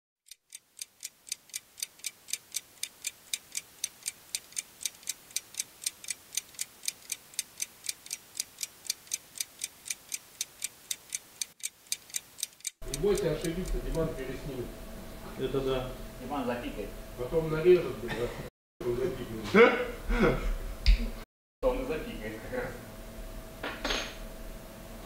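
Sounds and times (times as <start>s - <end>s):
fast clock-like ticking: 0.2s - 14.1s.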